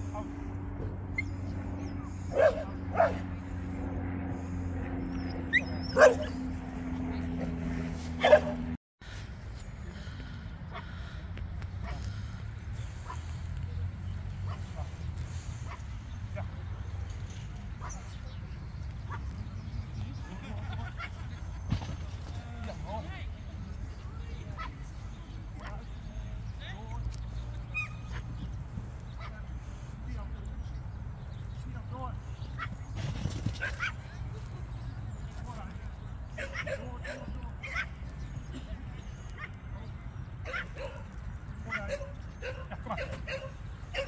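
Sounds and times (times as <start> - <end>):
steady low rumble: 0.0 - 44.0
dog barking: 2.3 - 3.2, 5.8 - 6.4, 8.2 - 8.6, 40.4 - 41.0
small dog yipping: 33.6 - 34.0.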